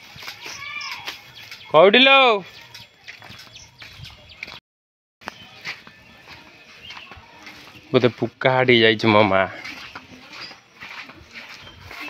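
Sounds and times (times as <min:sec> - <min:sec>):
outdoor background noise: 0:00.0 - 0:04.6, 0:05.2 - 0:12.0.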